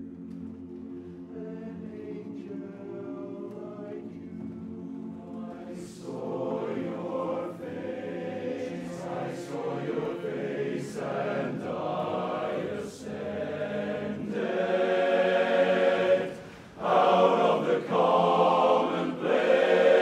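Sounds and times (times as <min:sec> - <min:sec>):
male chorus singing a cappella: 0:01.2 - 0:20.0.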